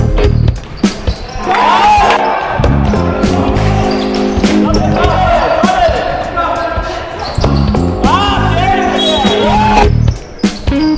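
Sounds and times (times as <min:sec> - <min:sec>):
background music with a beat: 0:00.0 - 0:10.9
sneakers squeaking: 0:00.0 - 0:10.9.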